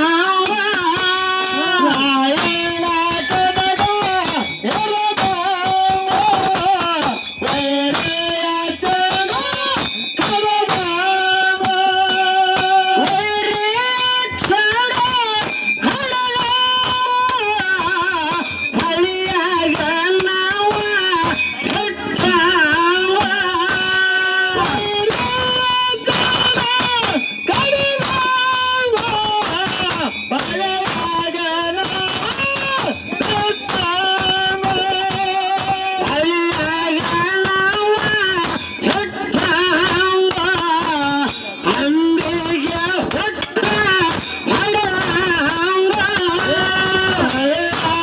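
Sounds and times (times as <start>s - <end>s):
folk song sung over loudspeaker: 0.0s - 48.0s
sharp drum strikes: 0.0s - 48.0s
small hand cymbals: 0.0s - 48.0s.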